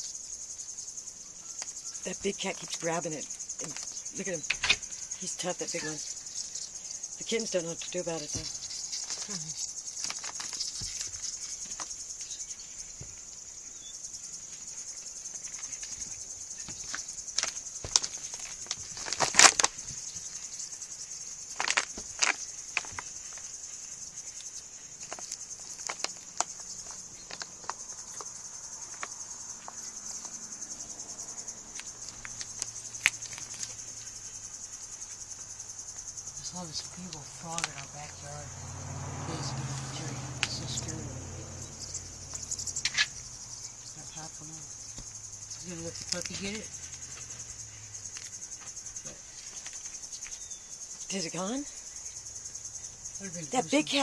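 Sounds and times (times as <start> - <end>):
cricket trilling: 0.0 - 54.0.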